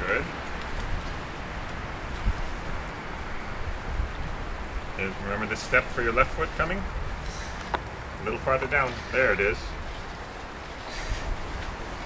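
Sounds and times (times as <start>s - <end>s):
wind on microphone: 0.0s - 5.0s, 9.7s - 12.0s.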